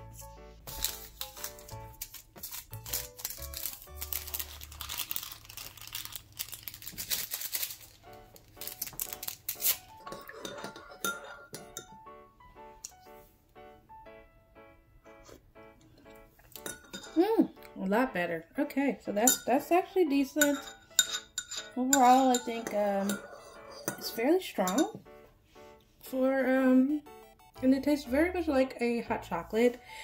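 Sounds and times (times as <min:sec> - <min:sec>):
background music: 0:00.0 - 0:05.2, 0:07.8 - 0:30.0
paper packets crinkling and tearing: 0:00.6 - 0:10.0
metal spoon clinking on mug: 0:10.0 - 0:12.0, 0:16.6 - 0:17.3, 0:19.2 - 0:19.6, 0:20.4 - 0:25.0.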